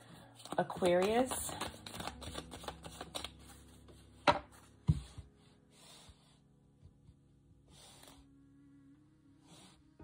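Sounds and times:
hand brushing cards: 0.4 - 3.8.

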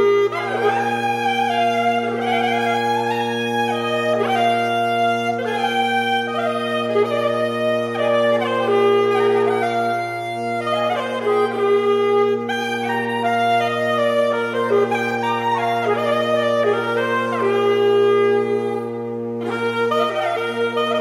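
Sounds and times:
saxophone quartet playing: 0.0 - 21.0.

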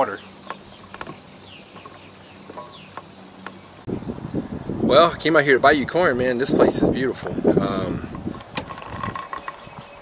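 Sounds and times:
wind buffeting microphone: 3.8 - 10.0.

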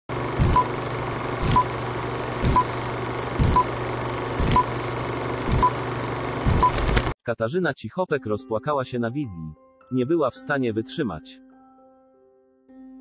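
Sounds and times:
film projector crackle and hiss: 0.1 - 7.2
short high beep: 6.6 - 7.0.

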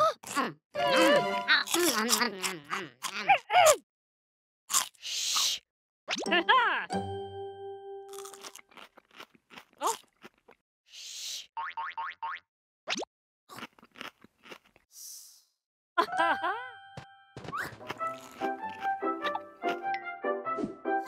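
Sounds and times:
cartoon character vocalizations: 0.0 - 3.8
cartoon celery crunching: 1.0 - 3.3, 4.7 - 5.5, 8.1 - 10.6, 13.5 - 14.9, 17.6 - 19.9.

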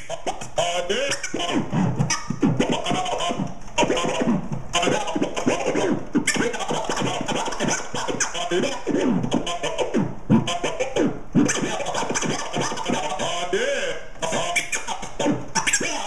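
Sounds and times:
vinyl record scratching: 0.0 - 16.0.

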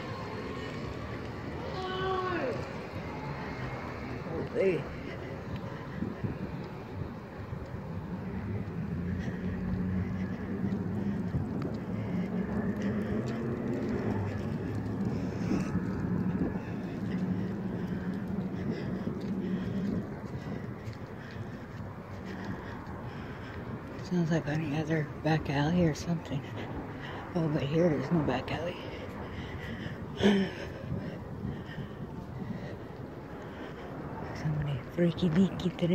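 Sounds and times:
low engine hum: 0.0 - 35.9.

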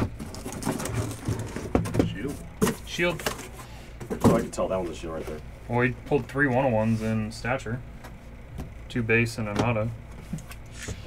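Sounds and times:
cardboard rustling and scraping: 0.0 - 5.4.

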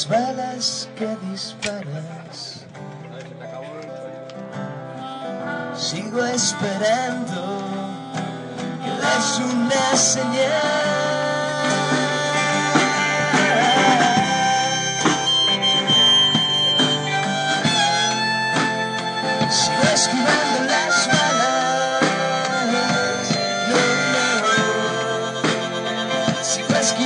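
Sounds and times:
rock band playing: 0.0 - 27.0
harmonica solo: 8.8 - 27.0.

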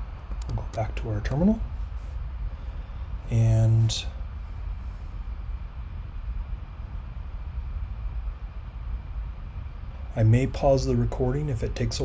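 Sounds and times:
faint hiss: 0.0 - 12.0
low background rumble: 0.0 - 12.0.

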